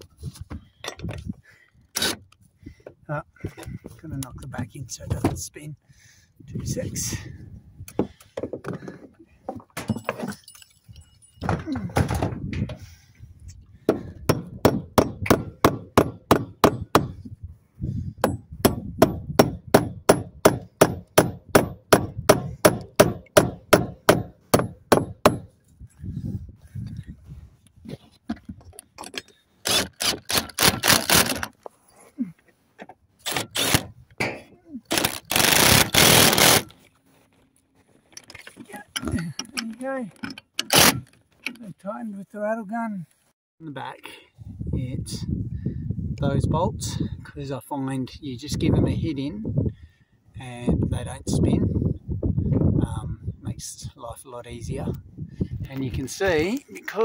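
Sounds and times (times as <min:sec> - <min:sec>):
hammer striking metal bolts: 0:14.3 - 0:17.2, 0:18.2 - 0:25.5
impact wrench bursts: 0:29.6 - 0:31.5, 0:33.2 - 0:33.9, 0:34.9 - 0:36.7, 0:40.6 - 0:41.1.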